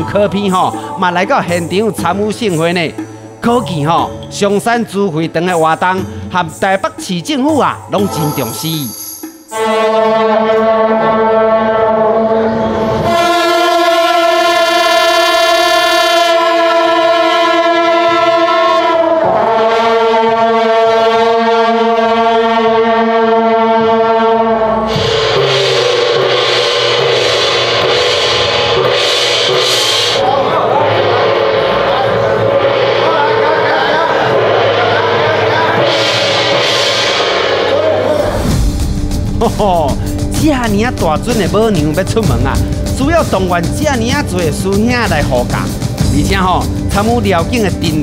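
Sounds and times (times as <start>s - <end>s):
cymbals: 0.0s - 48.0s
brass band sustained chords: 9.5s - 48.0s
hand gong: 23.5s - 38.2s
drums struck: 24.8s - 48.0s.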